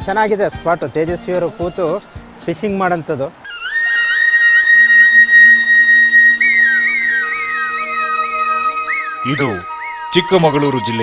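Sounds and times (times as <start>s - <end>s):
flute melody: 3.5s - 11.0s
low sustained drone: 3.5s - 11.0s.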